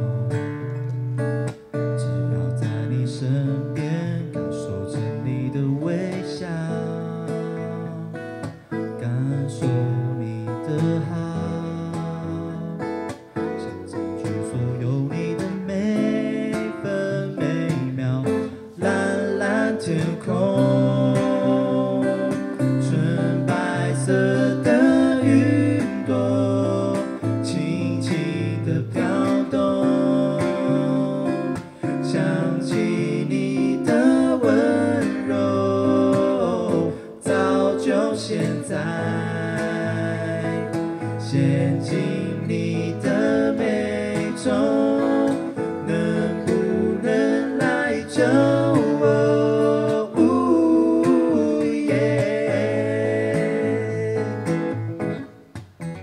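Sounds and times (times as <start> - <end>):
man singing into a microphone: 0.0 - 0.4, 1.8 - 55.2
acoustic guitars strummed and picked: 0.0 - 56.0.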